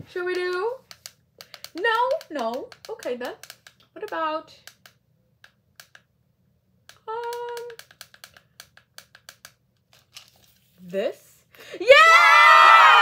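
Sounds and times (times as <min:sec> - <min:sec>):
remote buttons clicking: 0:00.3 - 0:06.1.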